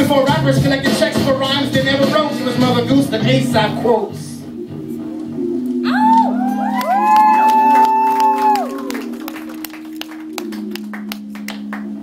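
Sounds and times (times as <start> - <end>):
high whoops: 5.8 - 9.1
crowd cheering: 5.9 - 11.8
people clapping: 6.2 - 12.0.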